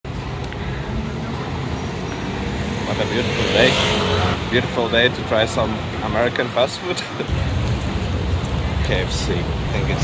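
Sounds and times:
cars passing: 0.1s - 10.0s.

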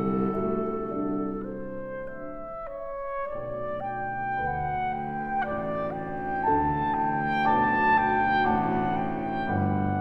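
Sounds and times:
clarinet cello and piano chamber music: 0.0s - 10.0s.

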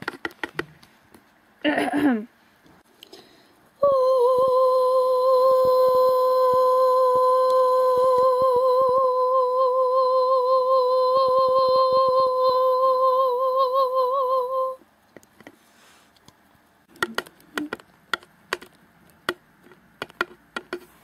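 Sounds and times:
person humming a high note: 3.8s - 14.8s.

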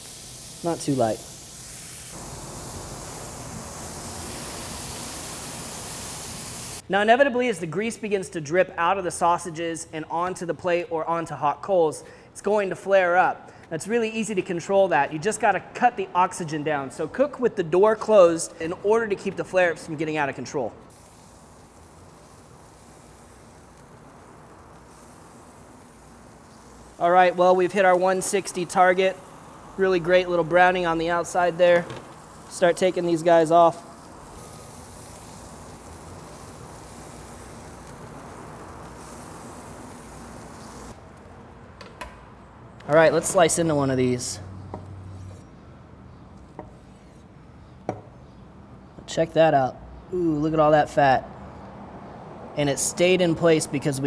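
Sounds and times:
sausages sizzling on a grill: 0.0s - 6.8s, 20.9s - 41.0s.

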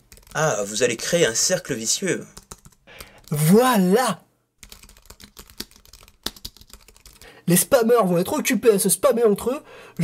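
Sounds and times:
keyboard typing: 0.0s - 0.6s, 2.3s - 3.4s, 4.6s - 7.3s.

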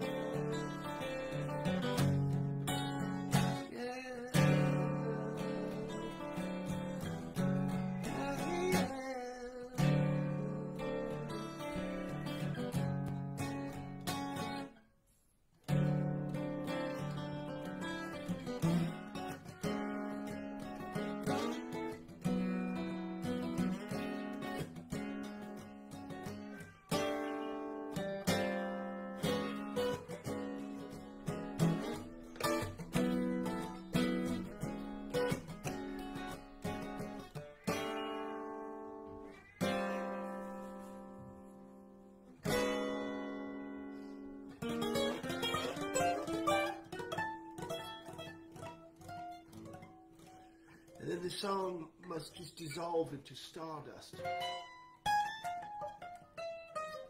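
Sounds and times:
acoustic guitar chords ringing: 0.0s - 14.7s, 15.7s - 52.2s.

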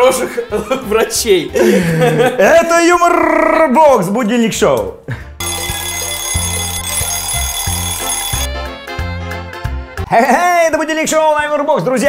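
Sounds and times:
ringing alarm clock bell: 5.4s - 8.5s.

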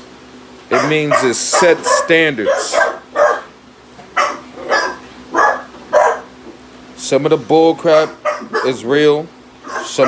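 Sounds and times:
dog barking: 0.7s - 3.6s, 4.2s - 6.3s, 8.0s - 8.9s, 9.6s - 10.0s.

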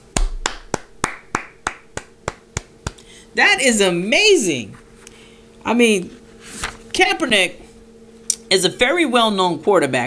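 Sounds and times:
person clapping: 0.0s - 3.1s.

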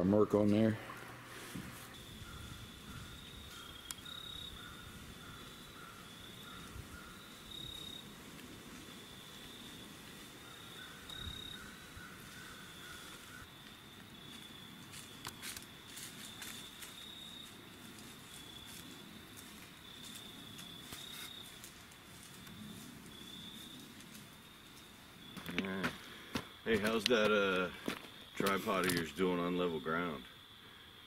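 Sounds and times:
insects trilling: 0.6s - 31.0s
lower pulsing insect trill: 1.2s - 31.0s.

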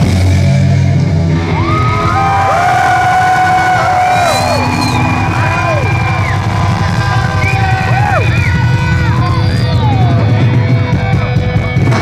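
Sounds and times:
crowd yelling and whooping: 1.3s - 11.0s.

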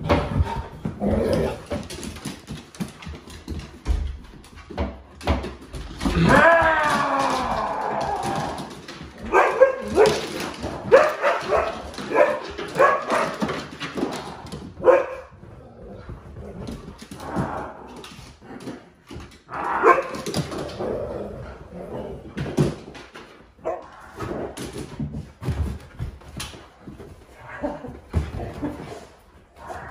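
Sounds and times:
dogs barking: 9.3s - 10.2s, 10.9s - 13.4s, 14.8s - 15.3s.

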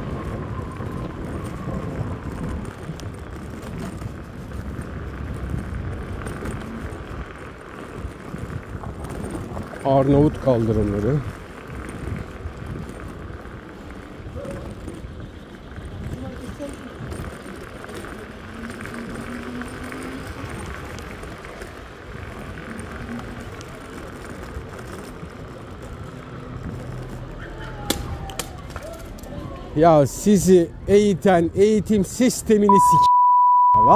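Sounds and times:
electric scooter rolling over paving stones: 0.0s - 32.7s.

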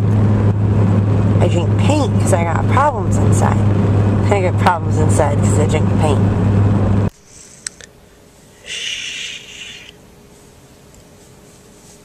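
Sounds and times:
person shushing: 8.6s - 10.0s.

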